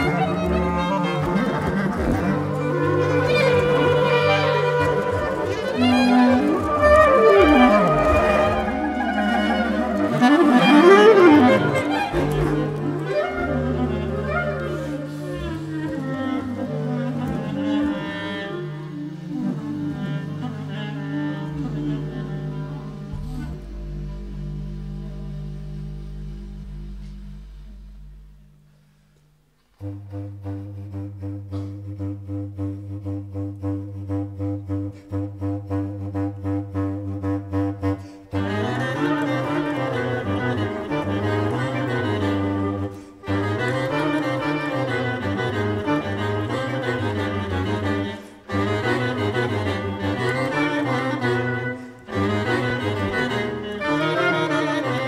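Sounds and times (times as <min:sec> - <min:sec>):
low drone: 0:21.4 - 0:29.0.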